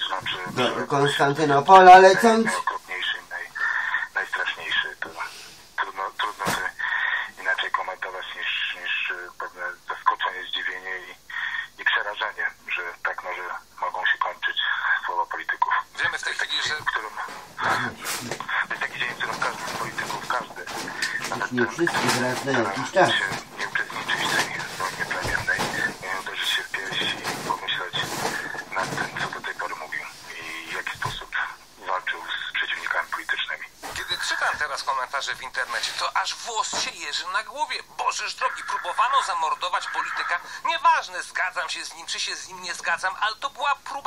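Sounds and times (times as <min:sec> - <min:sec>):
man talking over telephone: 0:00.0 - 0:44.0.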